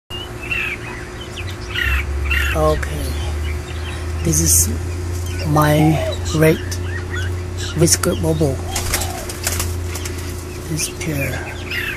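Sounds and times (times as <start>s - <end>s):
birds chirping: 0.1s - 11.9s
steady low rumble: 0.1s - 11.9s.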